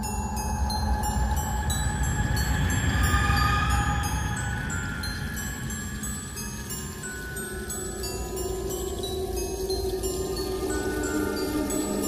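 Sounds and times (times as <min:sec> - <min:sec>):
glockenspiel-like chiming music: 0:00.0 - 0:12.0.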